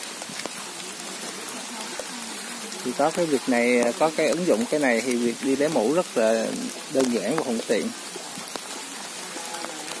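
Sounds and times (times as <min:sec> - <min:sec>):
rain on leaf litter and puddles: 0:00.0 - 0:10.0
sharp ticks of raindrops: 0:00.0 - 0:10.0.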